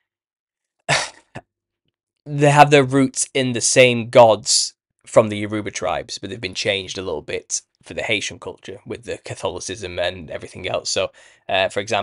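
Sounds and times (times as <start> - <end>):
man coughing: 0.9 - 1.4.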